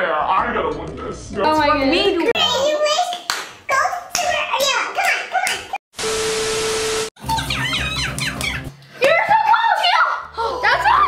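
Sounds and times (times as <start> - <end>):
excited children's voices: 2.2 - 5.8, 7.2 - 11.0
child clapping hands: 3.0 - 5.7, 8.1 - 8.6.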